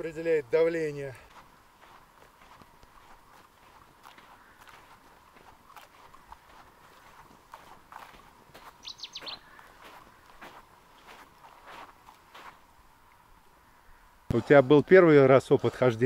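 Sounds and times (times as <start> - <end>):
soft ticks and rustles: 1.2 - 13.2
bird chirping: 8.6 - 10.4.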